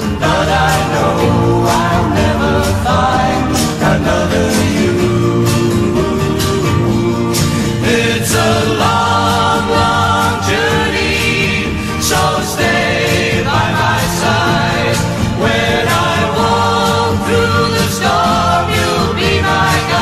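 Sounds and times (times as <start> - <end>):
double bass: 0.0 - 20.0
folk-pop band backing: 0.0 - 20.0
group harmony singing: 0.0 - 20.0
woman singing lead: 0.0 - 20.0.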